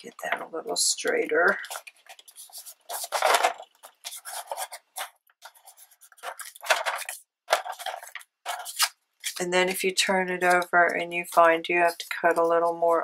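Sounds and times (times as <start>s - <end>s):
paper scraping on plastic board: 0.3s - 13.0s.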